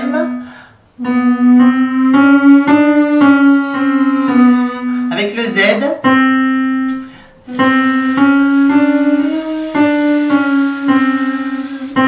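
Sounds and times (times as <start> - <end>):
electric keyboard playing a scale: 0.0 - 12.0
person humming: 7.5 - 12.0.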